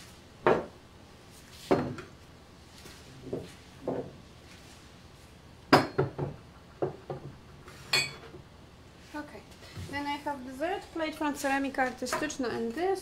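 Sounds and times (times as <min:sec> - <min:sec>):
pottery knocking on wooden shelves: 0:03.3 - 0:04.2, 0:05.7 - 0:07.4.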